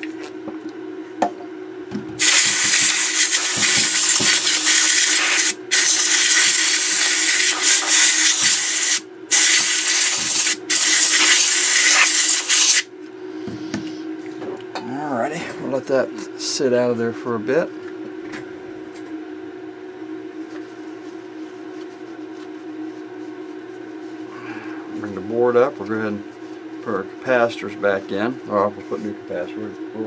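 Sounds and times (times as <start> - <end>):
compressed air hissing: 2.2 - 12.9
faint steady hum: 12.9 - 30.0.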